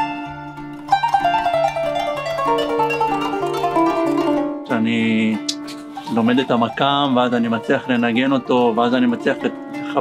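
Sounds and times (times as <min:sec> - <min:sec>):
plucked zither melody: 0:00.0 - 0:10.0.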